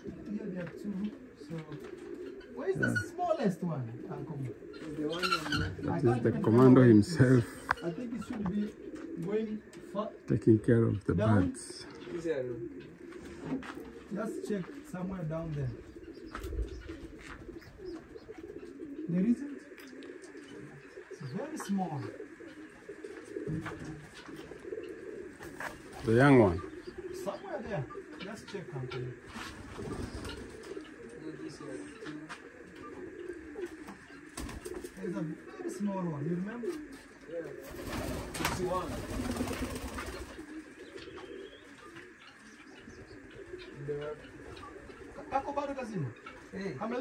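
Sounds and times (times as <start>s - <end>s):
pigeons cooing: 0.0s - 47.0s.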